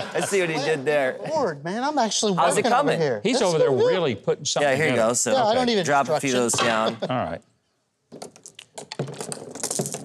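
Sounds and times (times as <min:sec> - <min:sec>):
marbles clattering down cardboard track: 0:08.9 - 0:10.0.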